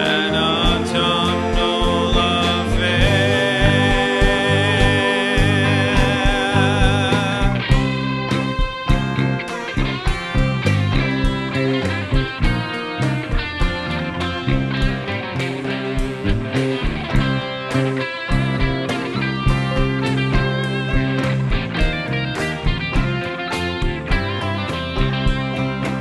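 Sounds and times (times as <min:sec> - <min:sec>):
drum kit steady beat: 0:00.0 - 0:26.0
electric guitars: 0:00.0 - 0:26.0.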